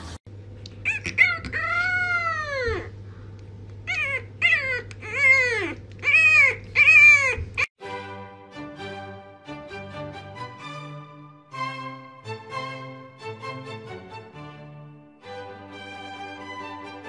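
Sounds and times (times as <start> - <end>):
puppy howling: 0.8 - 3.0, 3.8 - 7.7
background music: 7.8 - 17.0.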